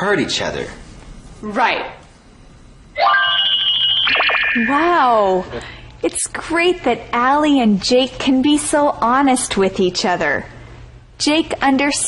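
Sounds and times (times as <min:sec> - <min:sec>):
bell-like ringing with trill: 0:03.0 - 0:05.3.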